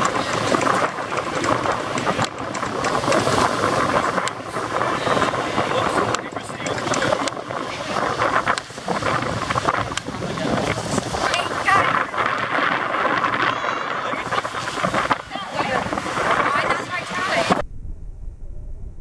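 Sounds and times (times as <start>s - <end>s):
people's voices: 0.0s - 17.6s
wind buffeting microphone: 0.0s - 19.0s.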